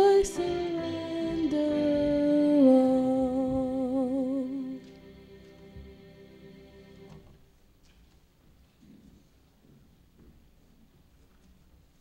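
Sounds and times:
person singing a hymn: 0.0s - 7.2s.

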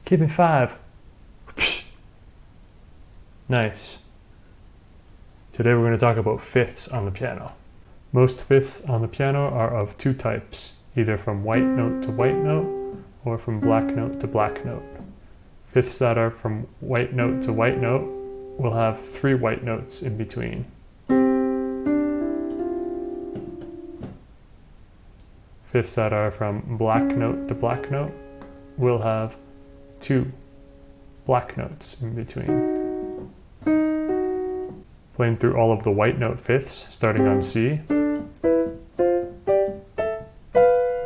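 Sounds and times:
piano notes ringing: 11.3s - 15.1s, 16.6s - 24.2s, 26.5s - 34.9s, 37.1s - 41.0s
piano fifths ringing: 22.2s - 24.2s.

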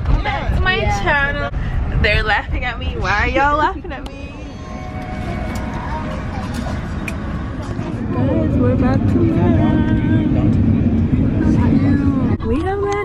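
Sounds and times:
people talking: 0.0s - 4.5s, 5.6s - 13.0s
airliner cabin rumble: 0.0s - 13.0s.

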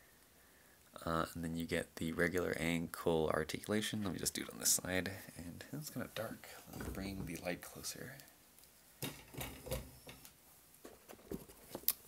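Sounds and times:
rustling: 3.6s - 12.0s.

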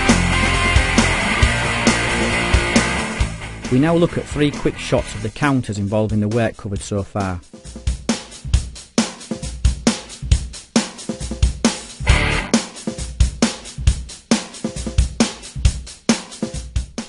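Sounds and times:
background music with drum beat: 0.0s - 17.0s.

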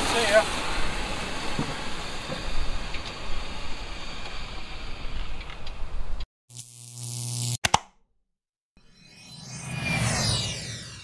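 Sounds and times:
electronic sound effect: 8.8s - 11.0s.

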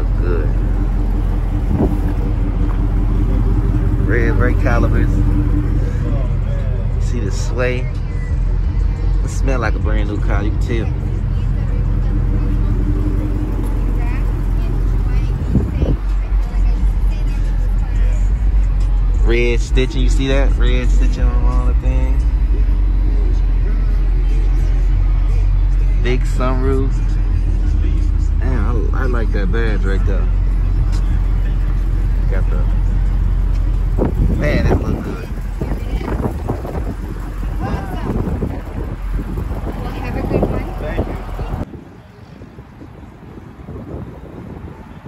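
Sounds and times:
low rumble: 0.0s - 41.8s
faint voices: 0.0s - 43.6s
car engine idling: 0.0s - 45.0s.

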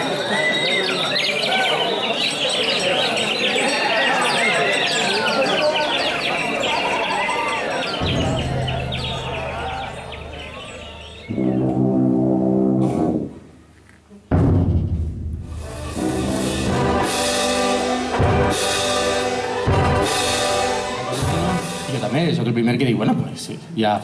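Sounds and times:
wind band playing: 3.8s - 13.4s, 15.5s - 22.8s
sharp percussion strokes: 4.4s - 11.5s, 14.8s - 22.6s
timpani: 8.0s - 10.6s, 11.3s - 13.4s, 14.3s - 22.6s.

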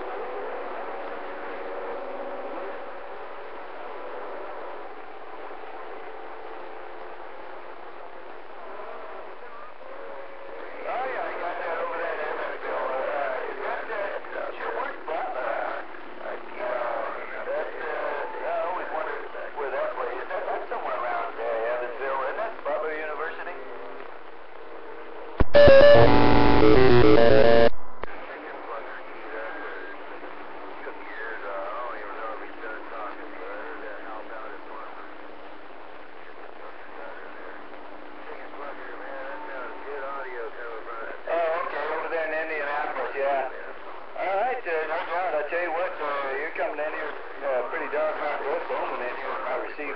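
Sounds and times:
faint garbled radio voices: 0.0s - 49.9s
radio hiss: 0.0s - 49.9s
buzzing stepped tones: 25.4s - 28.2s.

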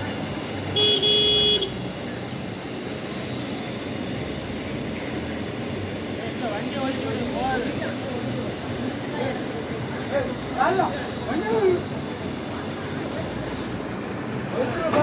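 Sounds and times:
street noise: 0.0s - 15.0s
vehicle horn: 0.8s - 1.8s
people talking: 6.2s - 13.7s, 14.4s - 15.0s.

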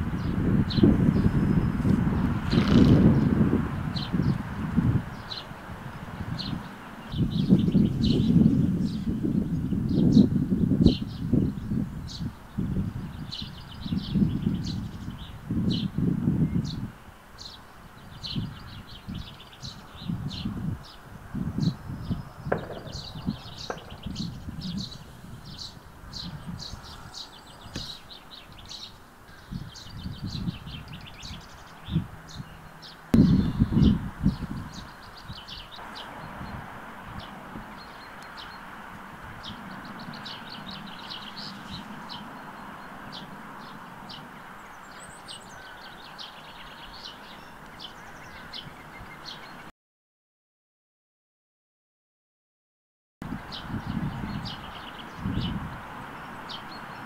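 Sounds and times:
small birds chirping: 0.0s - 49.7s, 53.3s - 57.0s
wind rumble on microphone: 0.0s - 49.7s, 53.2s - 57.0s.

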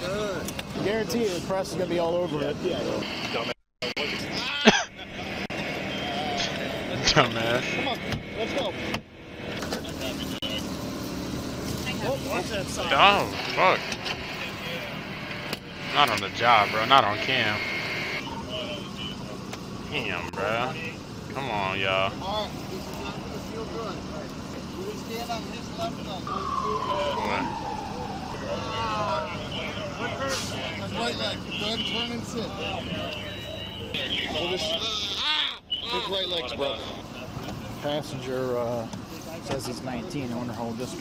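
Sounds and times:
voices talking: 0.0s - 41.0s
people calling out: 26.2s - 37.2s.

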